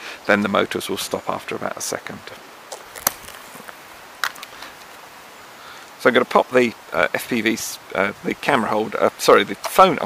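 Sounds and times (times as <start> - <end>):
hands rustling gear and gravel: 2.7 - 5.0.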